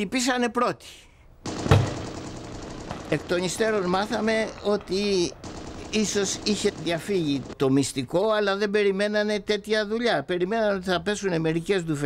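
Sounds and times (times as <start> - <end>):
gunfire bang with low boom: 1.5 - 7.6.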